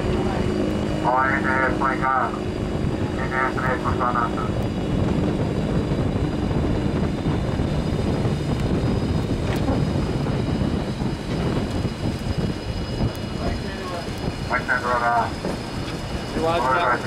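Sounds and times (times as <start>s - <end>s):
loud engine whine and rush: 0.0s - 17.0s.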